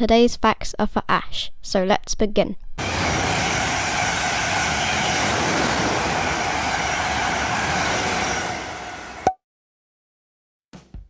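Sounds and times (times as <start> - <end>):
train wheels rolling on track: 2.8 - 9.3.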